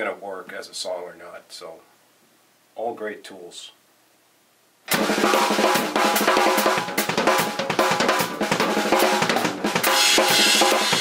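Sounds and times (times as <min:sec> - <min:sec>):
drum kit played hard and fast: 0:04.9 - 0:11.0.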